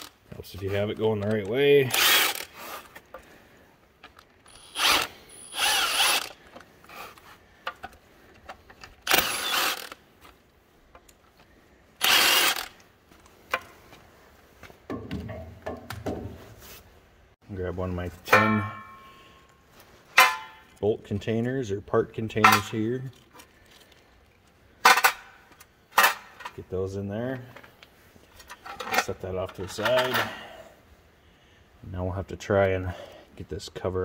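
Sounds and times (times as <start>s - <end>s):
cordless ratchet spinning bolts: 1.9s - 2.5s, 4.5s - 6.4s, 9.0s - 10.0s, 12.0s - 12.8s.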